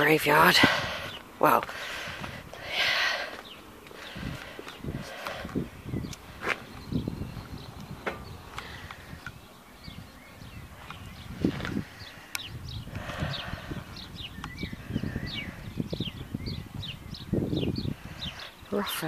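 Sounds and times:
small birds chirping: 0.0s - 19.0s.

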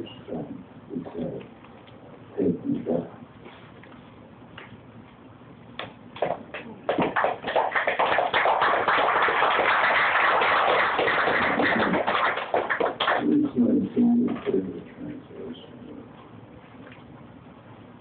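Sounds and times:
audience applauding: 6.9s - 13.5s.

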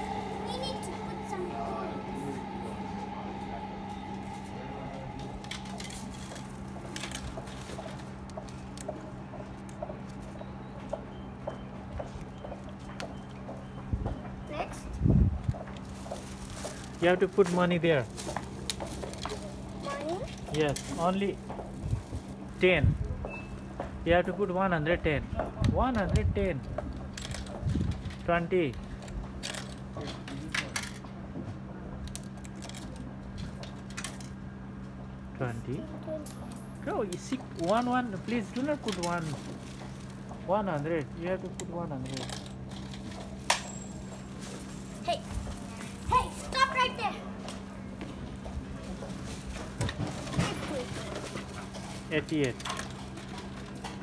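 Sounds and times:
vending machine humming: 0.0s - 25.2s, 26.2s - 54.0s.

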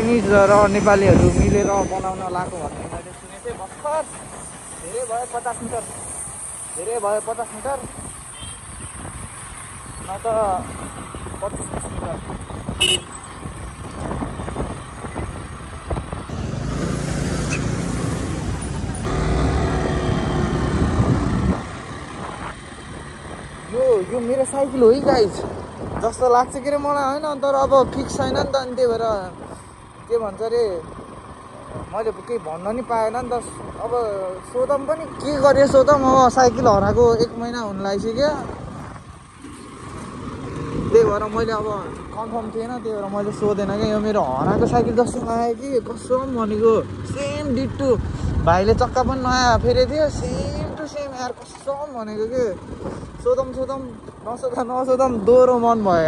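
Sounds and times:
person talking: 0.0s - 4.2s, 40.8s - 56.0s
motorcycle engine rumble: 0.0s - 56.0s
road and wind noise: 0.0s - 56.0s
motorcycle horn toot: 8.3s - 8.7s, 12.8s - 13.2s
motorcycle engine running: 9.4s - 26.1s.

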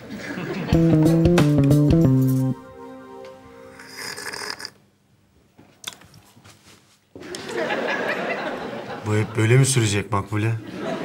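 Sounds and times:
guitar music: 0.6s - 3.9s
breathy slurp of tea: 3.8s - 4.8s.

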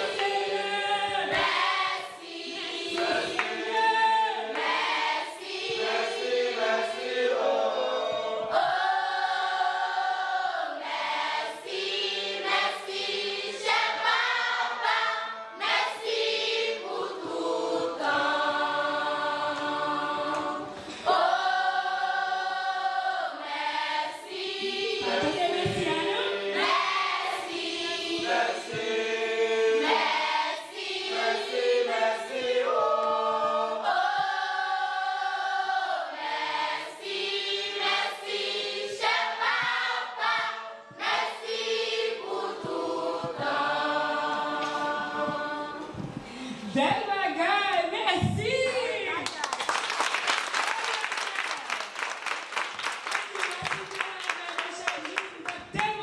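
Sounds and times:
youth choir singing: 0.0s - 47.0s.

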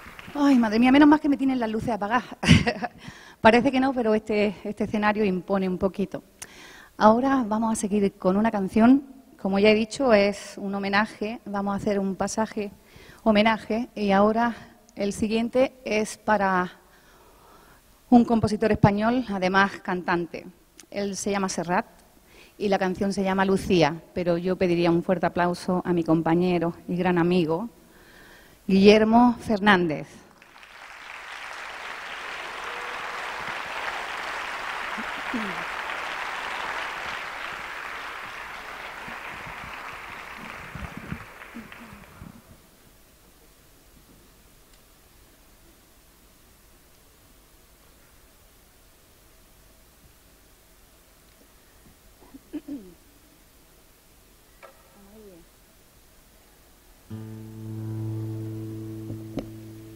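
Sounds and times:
audience applauding: 0.0s - 0.8s, 30.4s - 42.4s
acoustic guitar low note ringing: 57.1s - 59.9s.

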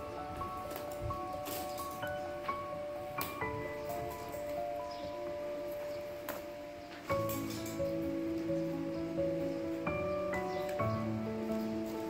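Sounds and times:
slow instrumental music: 0.0s - 12.0s.

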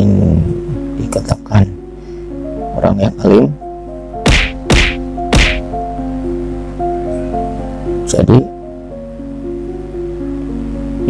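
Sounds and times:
soft background music: 0.0s - 11.0s
short sharp noises: 4.2s - 5.6s.

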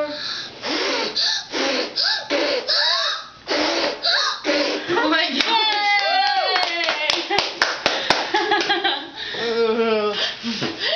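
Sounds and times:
sharp hand claps: 5.4s - 8.8s.

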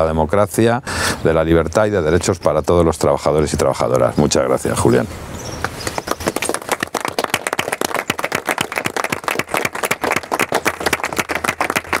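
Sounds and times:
people applauding: 5.8s - 12.0s.

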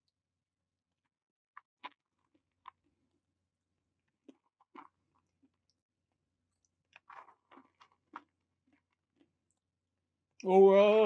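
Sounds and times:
person chewing: 1.6s - 3.2s, 4.0s - 5.8s, 6.5s - 9.6s.

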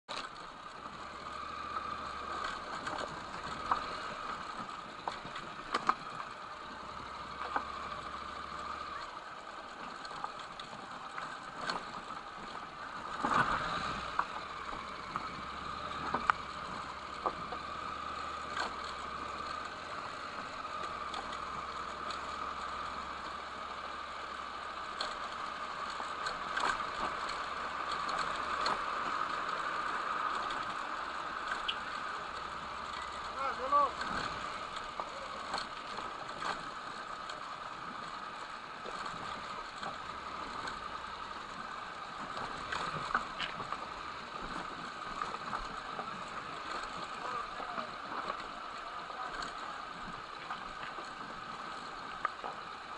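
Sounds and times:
motorcycle engine drone: 0.1s - 52.9s
person shouting: 33.4s - 34.0s.

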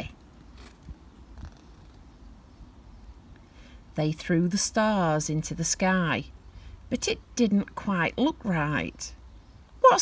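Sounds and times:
paper page turning: 0.5s - 2.0s.

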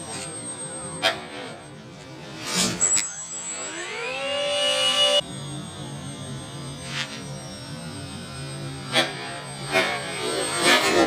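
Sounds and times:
electric motors whining: 0.0s - 11.0s.

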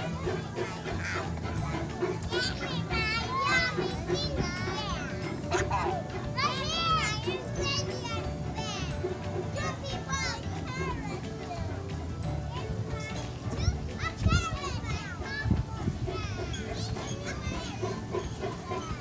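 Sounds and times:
background music: 0.0s - 19.0s
children calling and squealing: 0.0s - 19.0s.

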